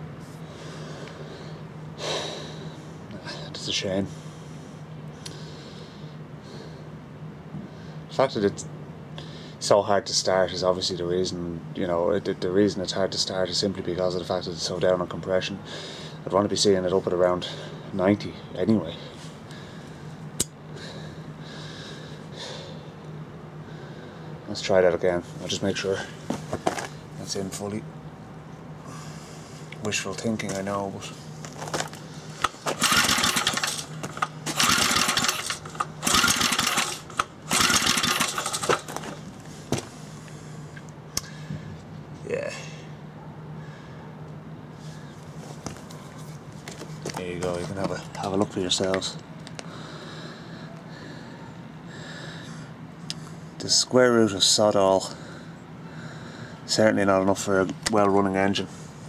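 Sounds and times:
steady low hum: 0.0s - 59.0s
man breathing: 0.3s - 3.1s, 4.1s - 8.1s, 9.2s - 9.6s, 15.6s - 16.2s, 17.4s - 18.0s, 18.9s - 24.5s, 28.8s - 29.8s, 39.5s - 41.8s, 42.5s - 45.3s, 49.6s - 53.6s, 55.0s - 56.7s
sharp click: 20.4s - 20.6s.

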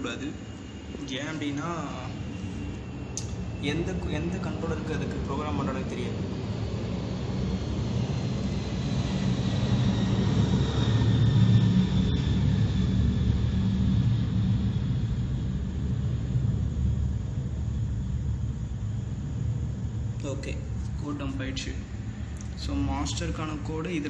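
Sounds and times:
distant aircraft rumble: 0.0s - 24.0s
faint high whine gliding down: 0.0s - 24.0s.

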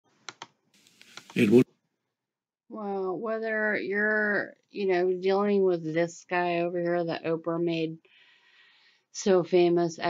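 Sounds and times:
computer mouse clicks: 0.1s - 1.4s
brief voice: 1.3s - 1.6s.

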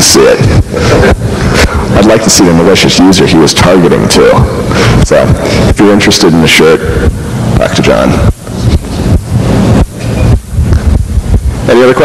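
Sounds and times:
rumbling noise on microphone: 0.0s - 12.0s.

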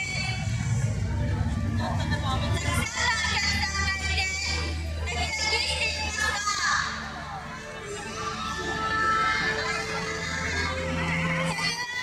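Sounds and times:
steady low rumble: 0.0s - 6.0s
music over loudspeaker: 0.0s - 12.0s
voices over loudspeaker: 0.0s - 12.0s.

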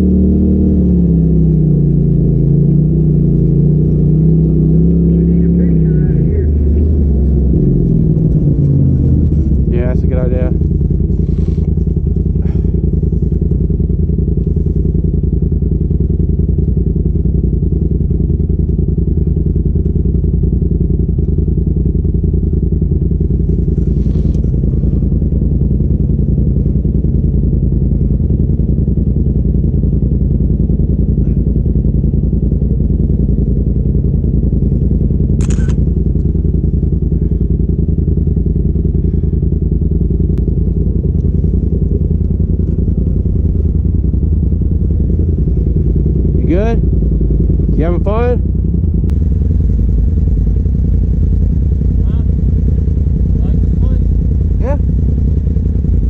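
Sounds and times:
vehicle engine droning: 0.0s - 56.0s
sharp click: 35.4s - 35.8s.

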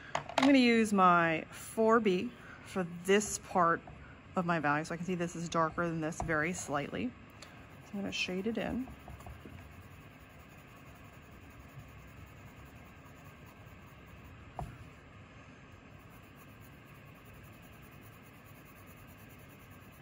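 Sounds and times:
pencil scratching on paper: 7.6s - 14.9s, 15.8s - 20.0s.

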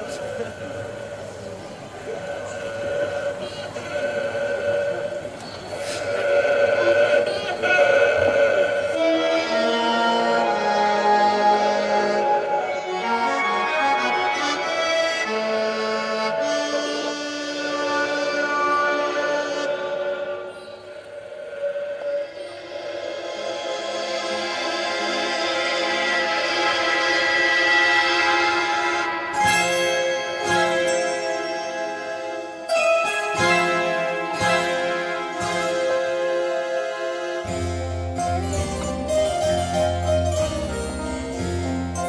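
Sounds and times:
accordion: 0.0s - 42.0s
rock band with accordion: 28.3s - 42.0s.

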